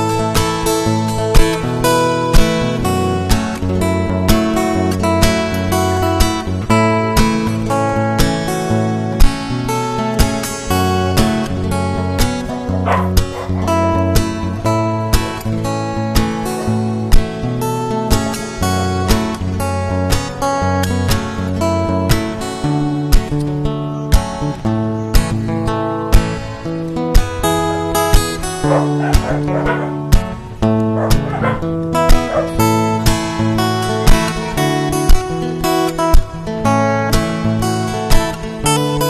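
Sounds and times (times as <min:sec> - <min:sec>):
acoustic guitar music: 0:00.0 - 0:39.0.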